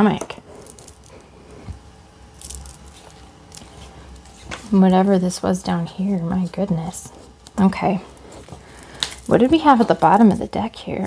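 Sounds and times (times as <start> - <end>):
cards rustling on cloth: 6.4 - 10.5.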